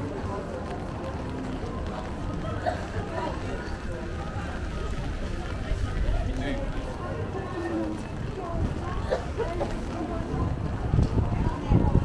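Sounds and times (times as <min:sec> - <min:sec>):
passers-by talking: 0:00.0 - 0:12.0.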